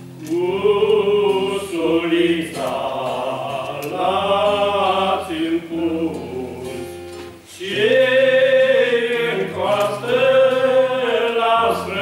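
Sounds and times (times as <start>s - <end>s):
men singing a hymn: 0.2s - 12.0s.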